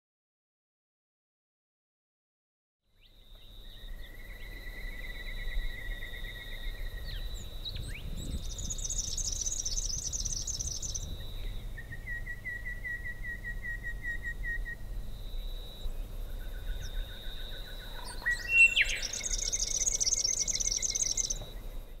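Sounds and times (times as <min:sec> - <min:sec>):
birds calling: 0:03.0 - 0:22.0.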